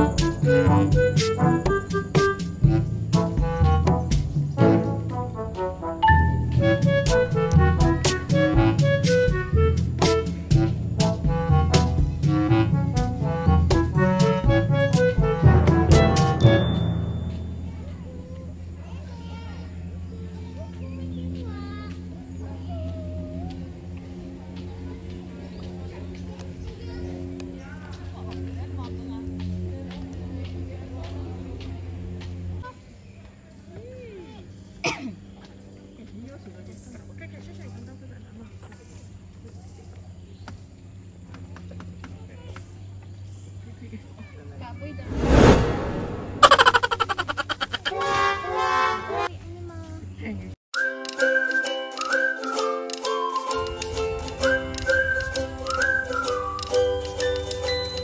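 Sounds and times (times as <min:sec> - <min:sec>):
gliding animal calls: 0:46.4 - 0:48.0.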